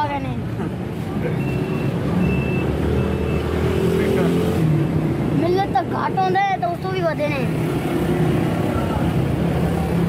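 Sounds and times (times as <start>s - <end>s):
high-pitched electronic beep: 1.3s - 3.6s.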